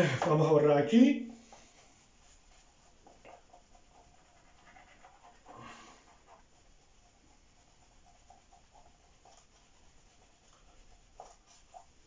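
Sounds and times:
eraser wiping a whiteboard: 1.3s - 12.0s.

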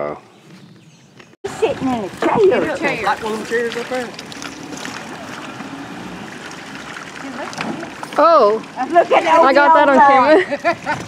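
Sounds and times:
water around boat hull: 1.4s - 11.0s
outboard motor running: 1.5s - 11.0s.

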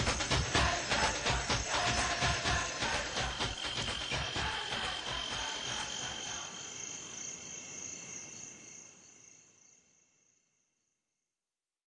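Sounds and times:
high insect chirring: 0.1s - 10.1s.

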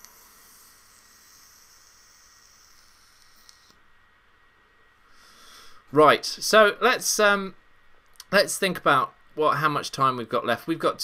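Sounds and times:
electronic cigarette hiss: 0.0s - 3.9s.

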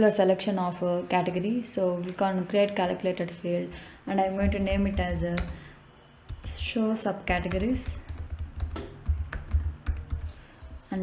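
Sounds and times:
computer keyboard typing: 4.4s - 5.6s, 6.3s - 10.4s.

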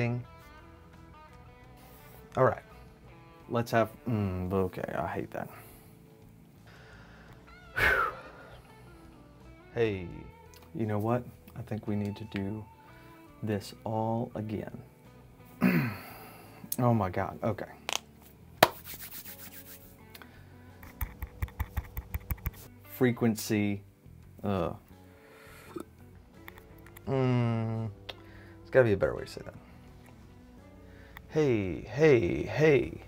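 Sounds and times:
faint background music: 0.0s - 33.0s
short vocal cry: 7.7s - 8.4s
hands rubbing together: 18.6s - 20.1s, 20.8s - 22.7s.

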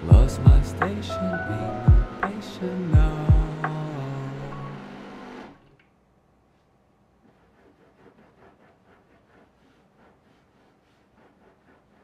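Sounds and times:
background music: 0.0s - 5.2s
espresso machine pump running: 4.8s - 5.6s.

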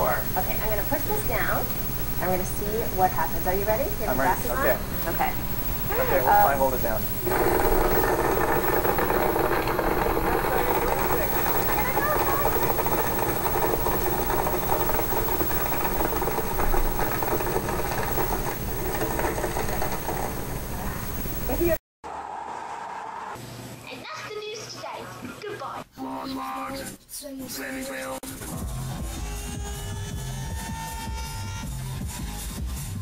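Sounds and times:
blender motor whirring: 0.1s - 21.8s.

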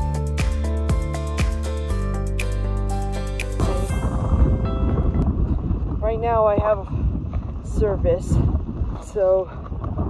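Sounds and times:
wind buffeting microphone: 3.6s - 10.0s
woman's voice: 6.0s - 7.0s, 7.6s - 9.6s.

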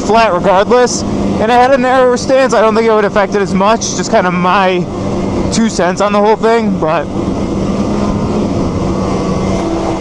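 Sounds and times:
snowmobile engine drone: 0.0s - 10.0s
snowmobile track noise: 0.0s - 10.0s
wind rushing: 6.8s - 10.0s.

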